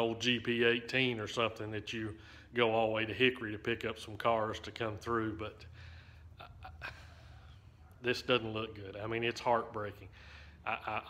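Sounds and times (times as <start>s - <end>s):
man speaking: 0.0s - 5.7s, 6.4s - 11.0s
steady low hum: 0.0s - 11.0s
breathy intakes: 5.6s - 7.8s, 10.1s - 10.7s.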